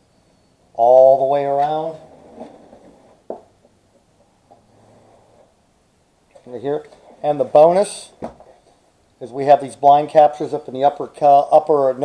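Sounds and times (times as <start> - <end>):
faint rubbing and shifting: 1.2 - 5.7, 6.3 - 8.8.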